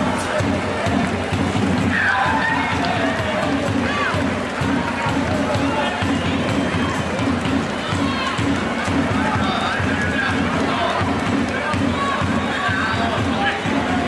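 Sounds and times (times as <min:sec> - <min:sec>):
arena crowd noise: 0:00.0 - 0:14.0
music with steady beat: 0:00.0 - 0:14.0
spectators shouting: 0:00.0 - 0:14.0.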